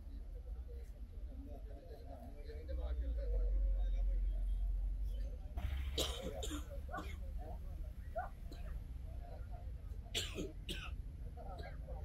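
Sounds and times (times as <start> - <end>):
faint voices: 0.0 - 12.0
person clearing throat: 6.0 - 7.2.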